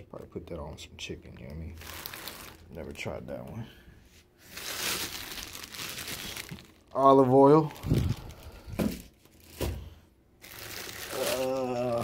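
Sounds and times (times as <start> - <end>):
plastic packaging rustling: 1.8 - 3.2, 4.4 - 12.0.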